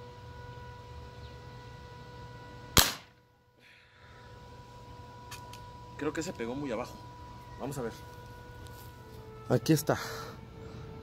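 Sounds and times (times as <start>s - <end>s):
steady background hum: 0.0s - 11.0s
air rifle shot: 2.8s - 3.2s.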